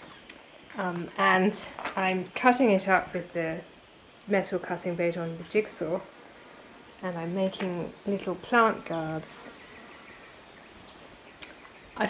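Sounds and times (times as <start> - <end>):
faint background ambience: 0.0 - 12.0.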